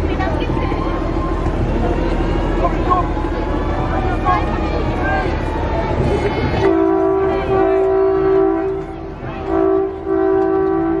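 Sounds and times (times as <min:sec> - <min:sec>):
two-note vehicle horn: 0:06.6 - 0:11.0.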